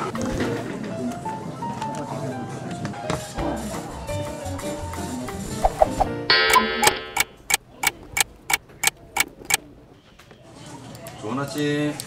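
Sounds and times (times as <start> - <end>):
clock ticking: 6.3 - 9.6.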